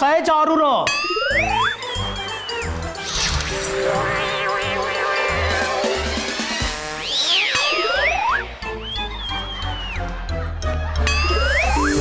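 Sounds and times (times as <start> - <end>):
comic swooping whistle effects: 1.3 - 10.0
rising pitch glide: 3.0 - 8.8
long high held tone: 3.4 - 8.6.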